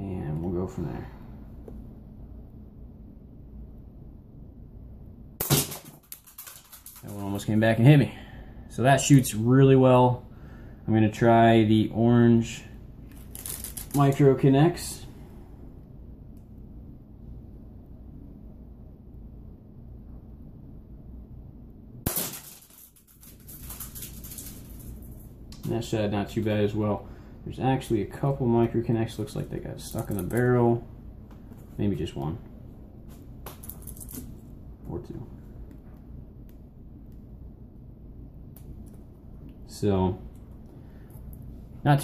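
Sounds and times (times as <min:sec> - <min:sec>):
low room hum: 0:00.0 - 0:42.0
plastic pieces clattering: 0:05.4 - 0:07.2, 0:22.1 - 0:25.2
plastic rods clattering: 0:05.5 - 0:07.2.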